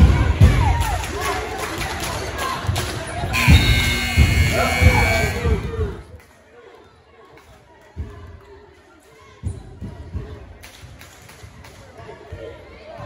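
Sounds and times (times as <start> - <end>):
spectators talking: 1.4 - 6.2.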